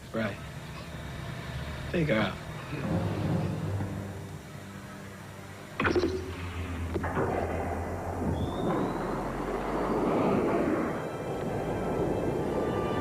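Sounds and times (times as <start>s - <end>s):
low hum: 0.0s - 13.0s
rising whine: 0.3s - 13.0s
music with held notes: 2.5s - 8.3s.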